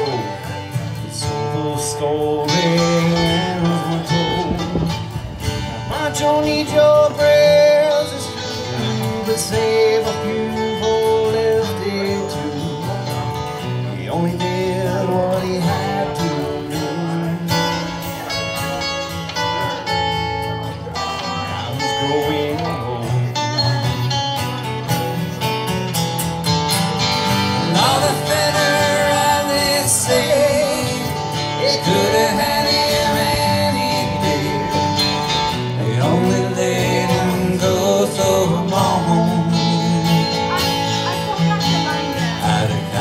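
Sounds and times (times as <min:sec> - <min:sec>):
man singing: 0:00.0 - 0:18.9, 0:21.2 - 0:25.2, 0:26.8 - 0:43.0
acoustic guitars strummed and picked: 0:00.0 - 0:43.0.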